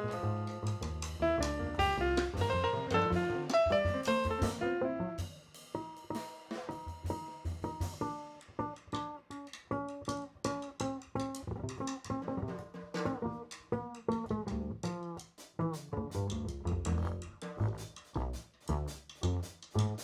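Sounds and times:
walking upright bass: 0:00.0 - 0:05.9, 0:06.8 - 0:20.0
drums: 0:00.0 - 0:20.0.

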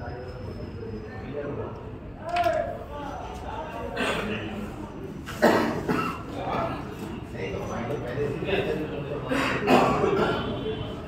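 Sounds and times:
person coughing: 0:05.4 - 0:06.3, 0:09.3 - 0:10.5.

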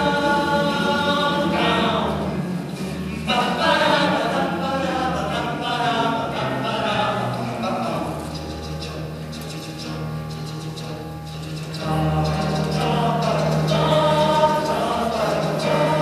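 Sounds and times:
male choir singing in harmony: 0:00.0 - 0:08.4, 0:11.8 - 0:16.0.

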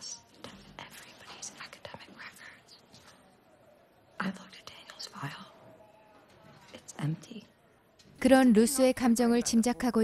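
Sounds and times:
women whispering: 0:00.0 - 0:02.8, 0:04.1 - 0:05.7.

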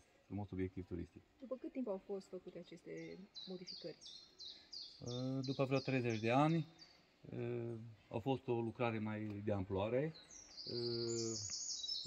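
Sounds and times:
songbird trilling: 0:02.9 - 0:07.0, 0:10.0 - 0:12.0
man saying uh: 0:10.7 - 0:11.4.

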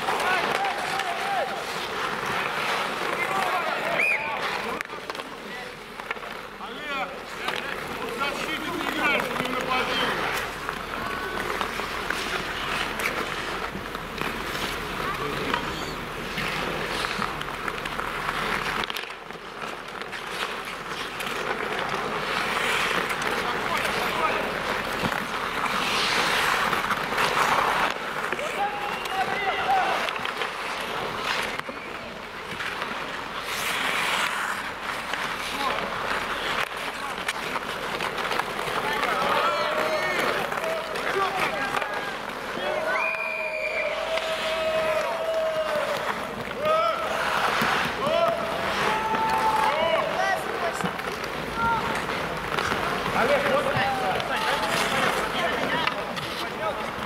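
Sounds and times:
players shouting: 0:00.0 - 0:05.6, 0:21.4 - 0:31.4, 0:35.4 - 0:56.5
skates scraping on ice: 0:00.0 - 0:57.0.

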